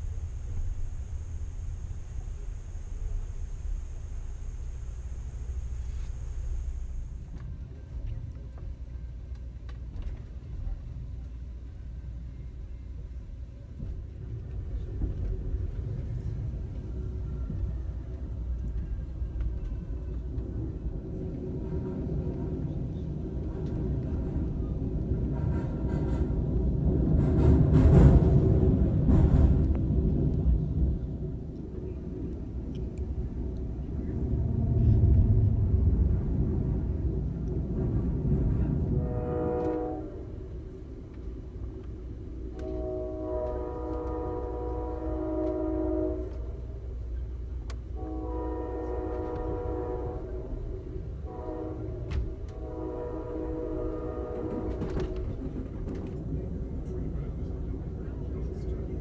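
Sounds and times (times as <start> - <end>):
locomotive horn blasts: 0.0 - 7.3, 38.9 - 40.4, 42.5 - 46.6, 47.9 - 50.6, 51.2 - 55.2
passenger train rumbling: 0.0 - 59.0.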